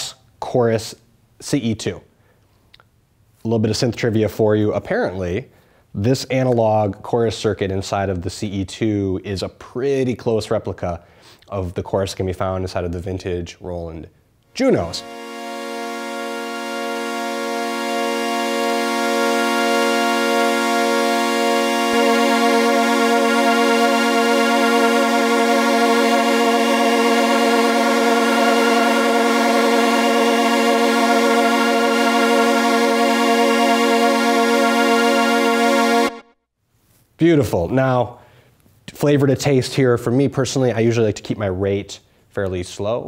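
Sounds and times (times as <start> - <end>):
synthesizer chord with chorus shimmer: 14.6 - 36.4.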